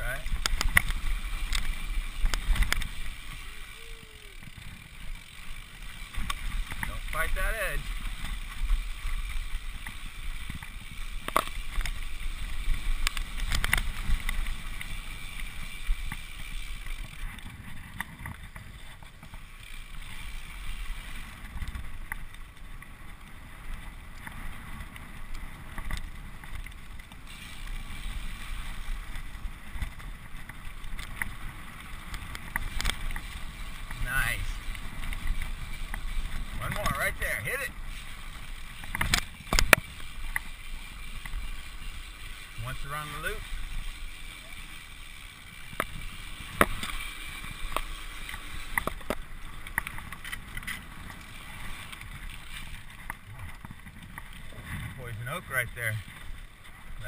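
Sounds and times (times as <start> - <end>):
bike knocking and rattling: 0.0 - 57.0
tyre and wind noise: 0.0 - 57.0.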